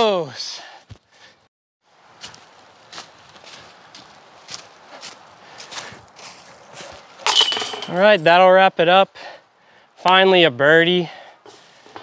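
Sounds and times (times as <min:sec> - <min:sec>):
footsteps in dry leaves: 0:01.9 - 0:07.2
disc hitting metal chains: 0:07.2 - 0:08.3.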